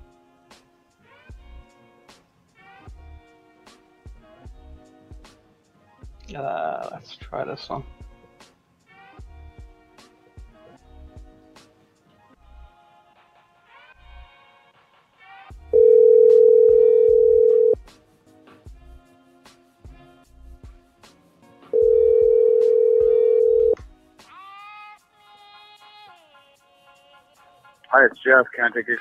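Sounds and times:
quiet background music: 0.0 - 29.0
telephone ringback tone: 15.8 - 17.8, 21.8 - 23.8.

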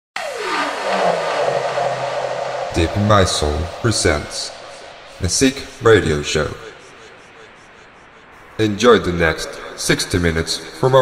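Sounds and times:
low steady drone: 0.2 - 9.8
noisy whoosh with falling sweep: 0.2 - 10.3.

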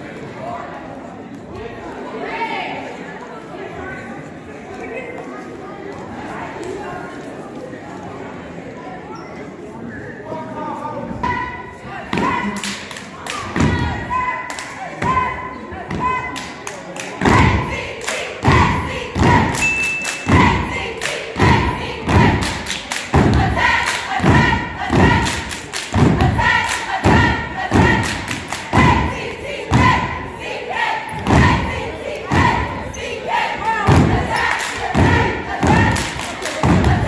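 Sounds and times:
cheerleaders chanting in unison: 11.2 - 37.0
stomps and claps: 15.9 - 30.1, 31.2 - 32.7, 33.8 - 37.0.

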